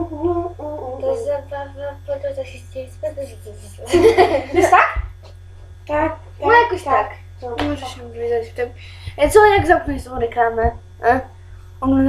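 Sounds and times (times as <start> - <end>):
girl humming: 0.0 - 2.2.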